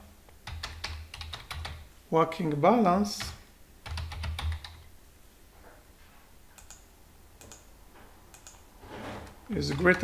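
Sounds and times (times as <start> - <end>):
typing on computer keyboard: 0.4 - 1.8, 3.2 - 4.9, 6.6 - 6.8, 7.4 - 7.7, 8.3 - 8.6.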